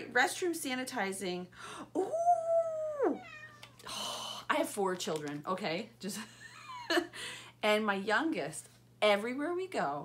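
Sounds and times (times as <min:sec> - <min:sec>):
cat meowing: 0:03.1 - 0:03.9.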